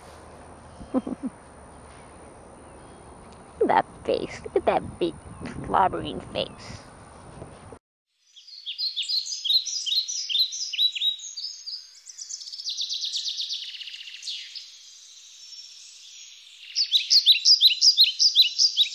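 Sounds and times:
birds chirping: 0:00.6 - 0:07.7, 0:08.3 - 0:18.9.

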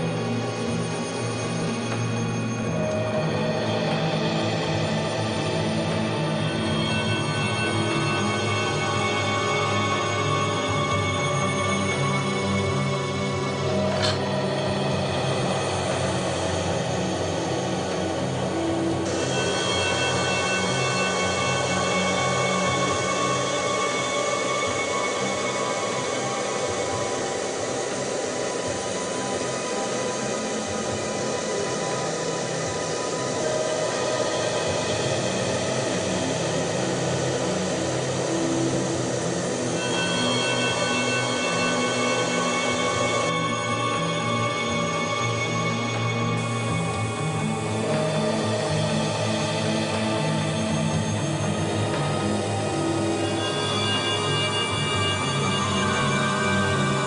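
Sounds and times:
tense background music: 0:00.0 - 0:57.0.

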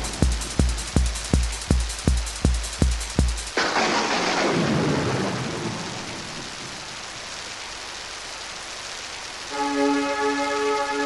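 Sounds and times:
rain-like hiss: 0:00.0 - 0:11.0
sampled thunderclap: 0:03.6 - 0:07.1.

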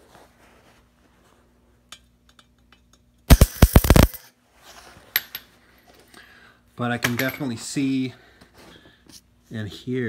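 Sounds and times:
welding arc crackle: 0:03.3 - 0:04.2.

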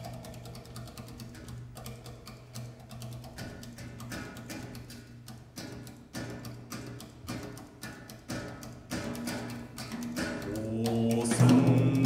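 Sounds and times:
drum kit light clicks and taps: 0:00.0 - 0:12.0.

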